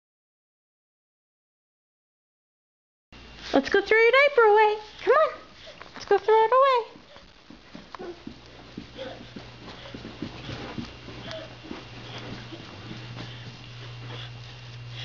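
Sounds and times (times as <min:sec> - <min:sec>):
low steady hum: 0:03.2 - 0:15.0
faint knocks and rustles: 0:06.9 - 0:14.9.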